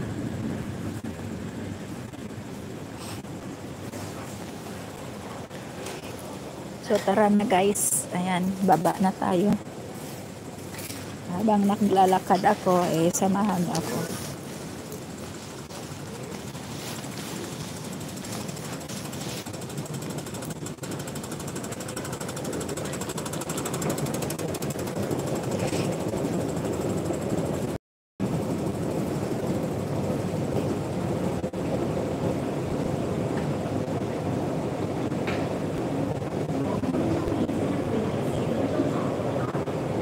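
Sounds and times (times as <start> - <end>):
escalator rattling rumble: 0.0 - 40.0.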